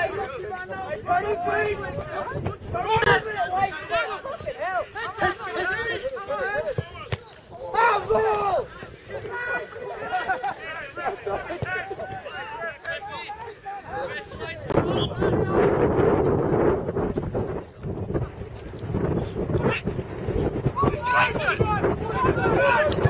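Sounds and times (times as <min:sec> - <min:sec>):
wind buffeting microphone: 0:00.0 - 0:06.2, 0:13.8 - 0:23.0
distant footballers shouting: 0:00.0 - 0:15.9, 0:19.6 - 0:23.0.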